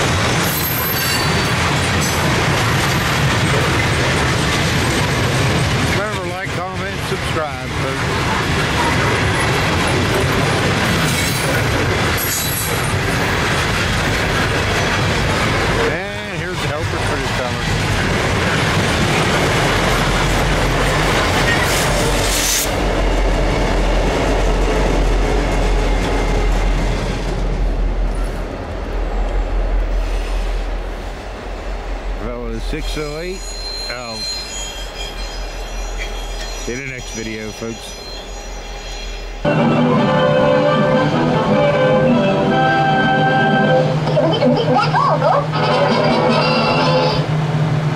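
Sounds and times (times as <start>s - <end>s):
freight train rumbling past: 0.0s - 47.9s
high wheel squeal: 0.4s - 1.6s, 32.7s - 40.4s.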